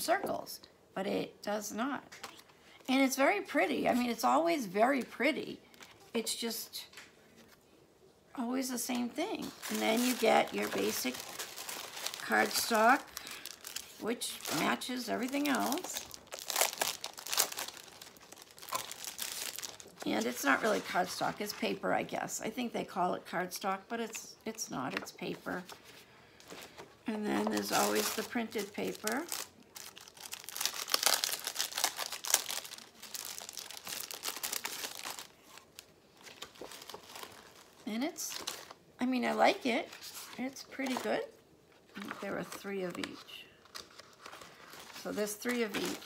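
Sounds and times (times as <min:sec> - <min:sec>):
tissue paper crinkling and rustling: 0:09.5 - 0:21.8, 0:25.0 - 0:38.8, 0:41.9 - 0:46.0.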